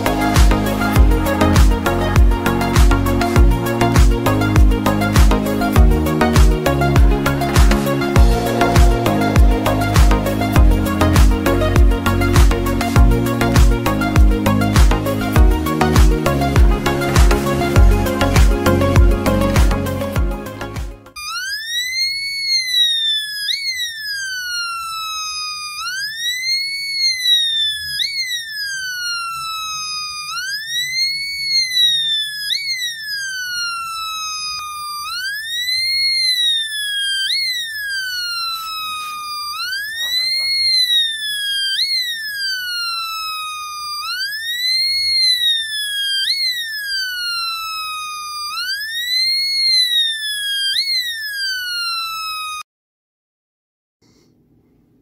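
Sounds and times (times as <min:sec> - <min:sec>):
electronic siren wailing: 0:00.0 - 0:52.6.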